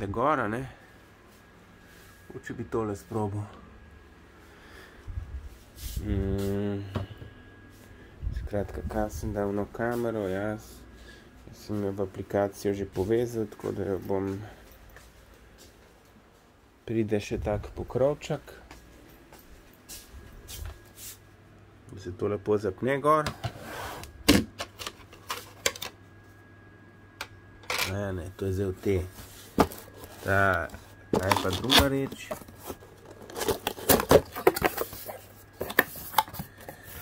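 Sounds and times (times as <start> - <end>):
plastic housing rustles and clicks: 24.5 - 26.0, 29.6 - 36.8.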